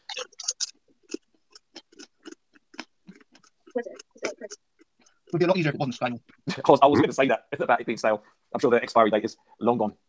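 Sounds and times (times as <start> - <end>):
crunchy chip chewing: 0.1 - 3.6.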